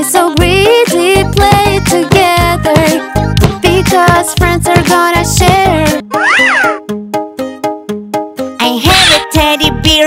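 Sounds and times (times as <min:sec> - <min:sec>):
children's song instrumental: 0:00.0 - 0:10.0.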